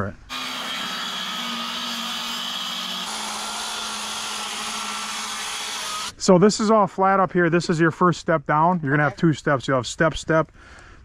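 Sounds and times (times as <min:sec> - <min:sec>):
circular saw cutting wood: 0:00.3 - 0:06.2.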